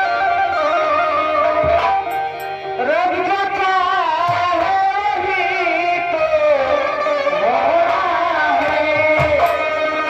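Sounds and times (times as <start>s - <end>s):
instrumental accompaniment: 0.0s - 10.0s
person singing into microphone: 0.0s - 10.0s.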